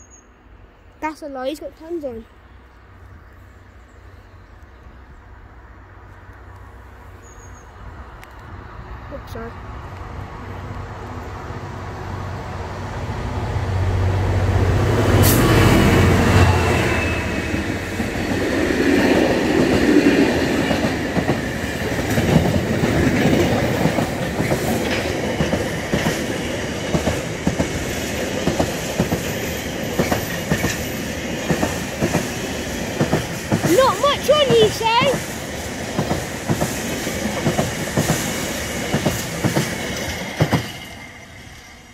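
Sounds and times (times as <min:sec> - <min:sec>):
diesel locomotive rumble: 0:04.5 - 0:41.8.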